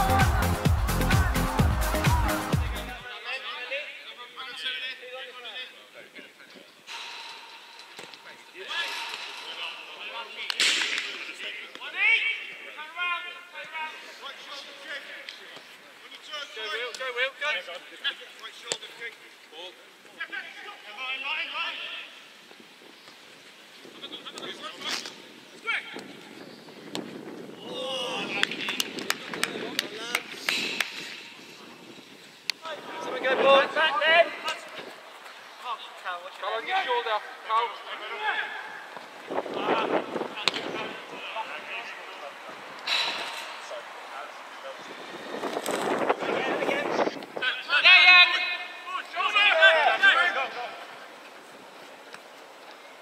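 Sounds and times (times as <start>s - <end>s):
footballers shouting: 0.0s - 3.0s, 46.2s - 51.0s
players shouting calls: 6.9s - 19.0s, 32.6s - 44.9s, 46.2s - 51.2s.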